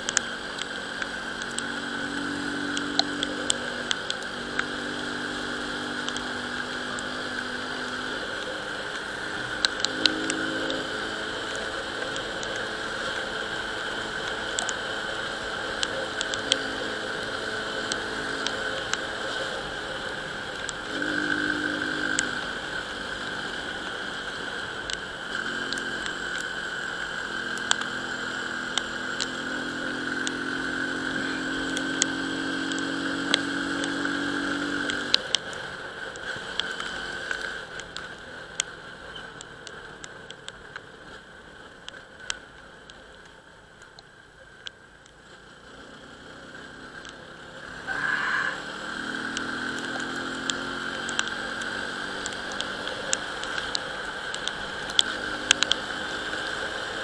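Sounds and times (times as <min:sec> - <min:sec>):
scooter engine running: 0:00.0 - 0:37.0, 0:48.5 - 0:57.0
sharp ticks: 0:00.0 - 0:57.0
steady whine: 0:00.0 - 0:57.0.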